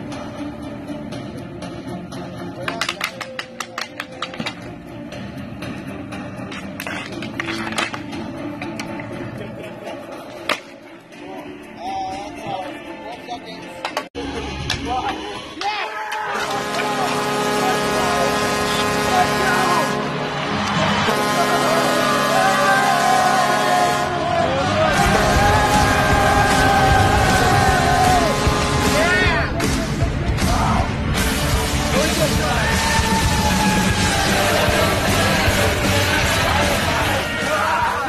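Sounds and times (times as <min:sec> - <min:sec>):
music: 0:00.0 - 0:38.0
hockey sticks clacking: 0:02.6 - 0:04.7, 0:06.4 - 0:09.2, 0:10.3 - 0:10.8
people shouting: 0:15.5 - 0:29.6, 0:30.4 - 0:31.0, 0:32.0 - 0:38.0.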